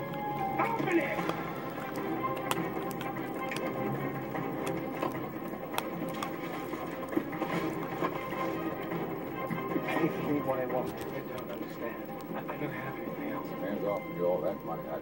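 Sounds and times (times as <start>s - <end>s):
dog gnawing chew stick: 0.0s - 13.6s
television music: 0.0s - 15.0s.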